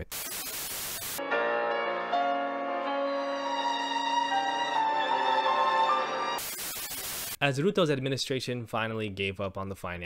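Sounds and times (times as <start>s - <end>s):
static hiss burst: 0.0s - 1.2s, 6.4s - 7.4s
music with held string notes: 1.2s - 6.4s.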